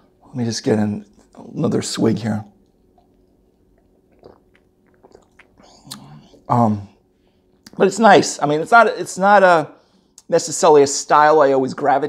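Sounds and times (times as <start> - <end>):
man sipping and swallowing: 2.6 - 6.5
soft mouth clicks: 2.6 - 6.5.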